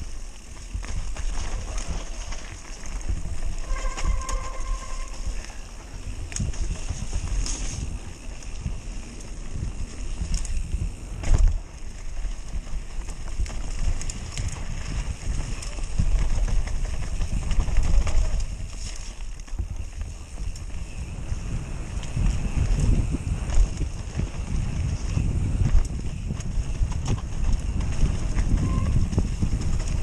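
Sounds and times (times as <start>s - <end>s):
bike rattles and knocks: 0.0s - 30.0s
tyres rumbling on dirt trail: 0.0s - 30.0s
wind buffeting microphone: 0.0s - 30.0s.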